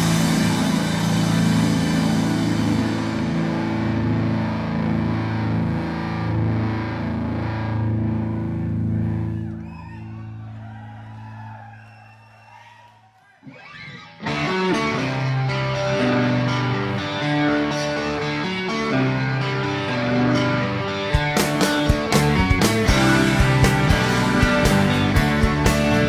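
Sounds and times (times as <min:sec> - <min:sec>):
rock band sustained chord: 0:00.0 - 0:09.1, 0:14.3 - 0:26.0
distorted electric guitar: 0:00.0 - 0:09.6, 0:13.5 - 0:26.0.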